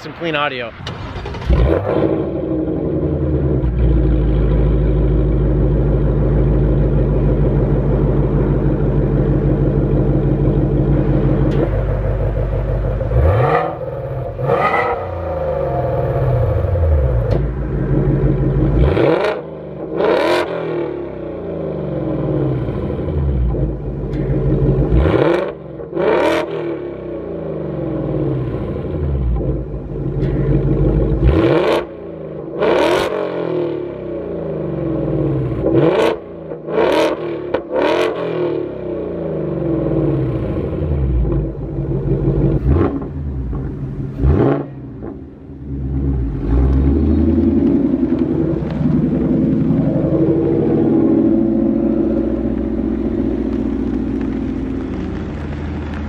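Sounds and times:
car engine idling and revving: 0:00.0 - 0:56.0.

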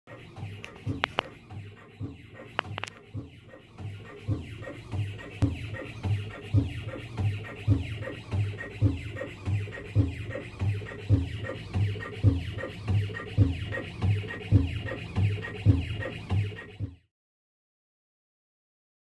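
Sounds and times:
machine running with low thuds: 0:00.1 - 0:17.1.

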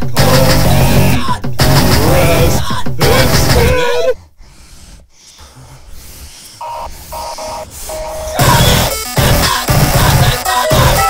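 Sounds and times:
noise-punk band playing loud: 0:00.0 - 0:03.6, 0:08.4 - 0:11.0.

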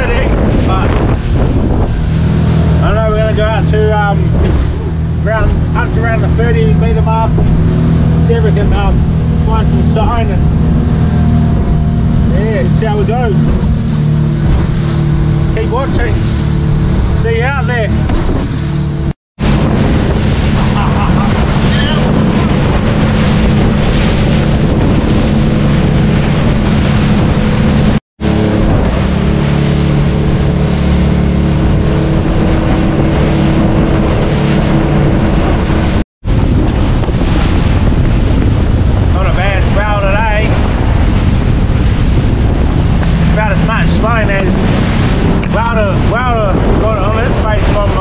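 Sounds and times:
boat engine drone: 0:00.0 - 0:48.0
water rushing past hull: 0:00.0 - 0:48.0
wind buffeting microphone: 0:00.0 - 0:48.0.

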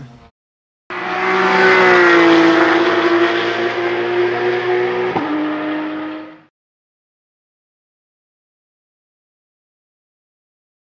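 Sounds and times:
race car engine at high revs: 0:00.9 - 0:06.5.

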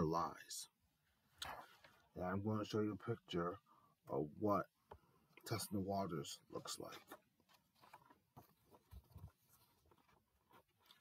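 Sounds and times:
paper rustling: 0:06.8 - 0:11.0.

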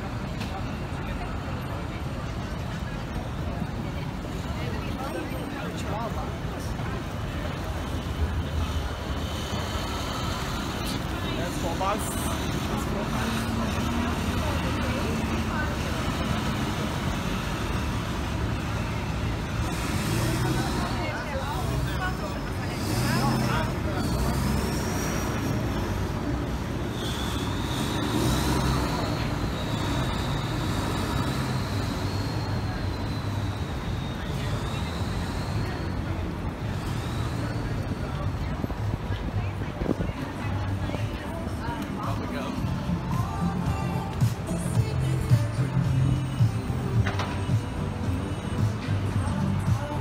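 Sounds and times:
passers-by talking: 0:00.0 - 0:50.0
road traffic rumble: 0:00.0 - 0:50.0.

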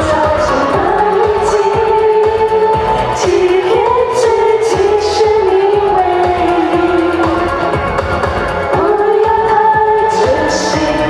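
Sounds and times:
women singing: 0:00.0 - 0:07.8, 0:08.7 - 0:11.0
amplified music with beat: 0:00.0 - 0:11.0.

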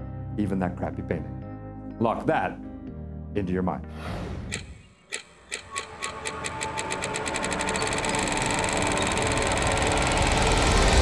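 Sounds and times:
accelerating clicks into buzz: 0:04.5 - 0:11.0.

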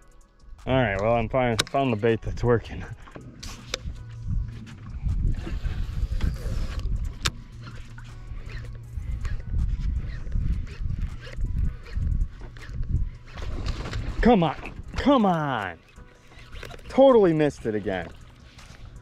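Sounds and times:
low handling rumble: 0:02.2 - 0:19.0
fishing reel cranking: 0:05.2 - 0:14.2, 0:14.8 - 0:19.0.

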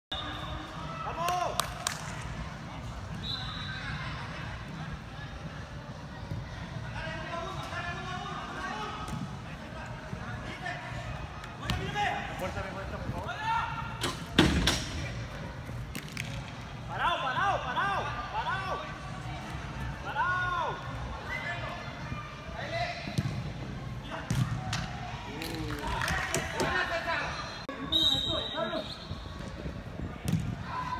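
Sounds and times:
crowd hubbub in hall: 0:00.1 - 0:30.9
soccer ball kick thud: 0:23.1 - 0:23.5, 0:30.2 - 0:30.7.

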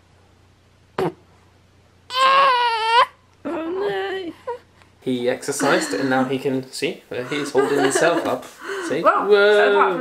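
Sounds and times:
baby crying: 0:02.1 - 0:03.2
baby vocal sound: 0:02.1 - 0:03.7.

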